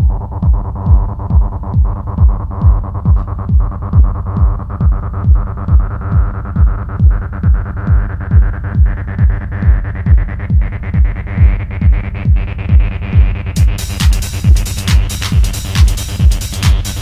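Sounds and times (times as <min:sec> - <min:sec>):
four-on-the-floor kick drum: 0:00.0 - 0:17.0.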